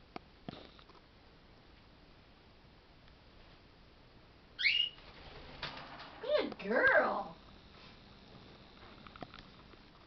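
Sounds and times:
cockatiel whistled call: 0:04.6 - 0:05.0.

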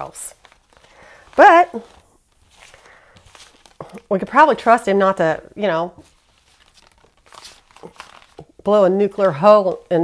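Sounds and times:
soft rustles: 0:00.0 - 0:10.0.

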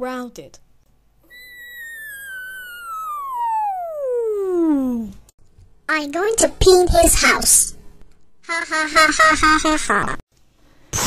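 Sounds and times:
descending whistle: 0:01.2 - 0:05.1.

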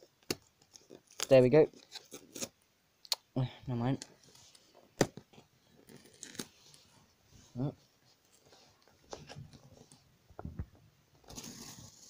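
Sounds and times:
cardboard tearing and crackling: 0:05.8 - 0:06.5, 0:11.2 - 0:12.0.

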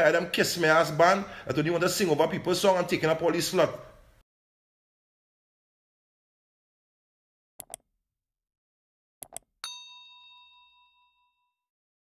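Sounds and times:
mouse clicks: 0:07.6 - 0:07.8, 0:09.2 - 0:09.5
bell ding: 0:09.6 - 0:11.7.

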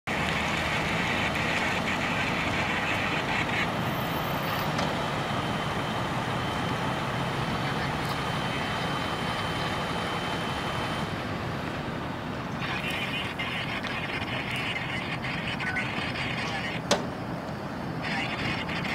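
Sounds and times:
fire engines idling: 0:00.1 - 0:18.9.

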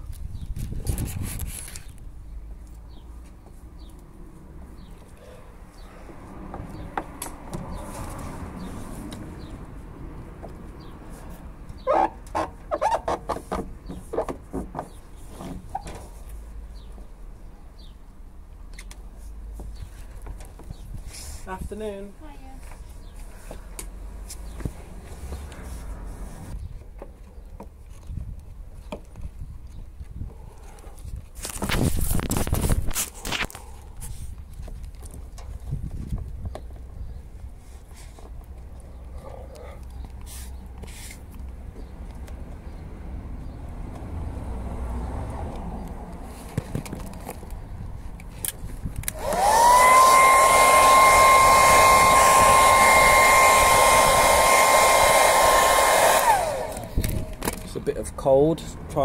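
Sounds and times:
hot-air blower whining: 0:49.1 - 0:57.4.

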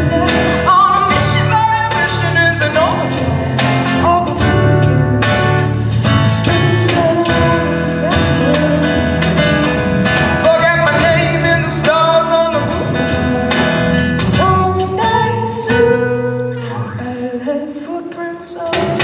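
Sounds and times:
woman singing: 0:00.0 - 0:09.7, 0:10.3 - 0:19.0
electric bass: 0:00.0 - 0:17.2
strummed acoustic guitar: 0:00.0 - 0:19.0.

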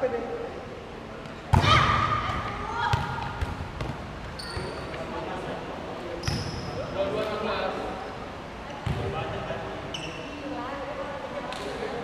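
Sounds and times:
sneakers squeaking on court: 0:02.9 - 0:05.0, 0:06.2 - 0:06.8.

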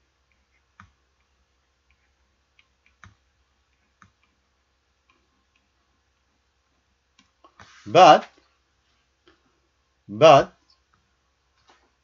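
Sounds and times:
stylus tapping pen tablet: 0:00.2 - 0:04.4.

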